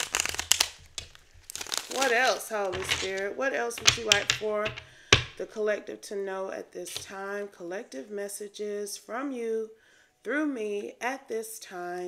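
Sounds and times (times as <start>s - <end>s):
cards being shuffled by hand: 0.0s - 5.4s.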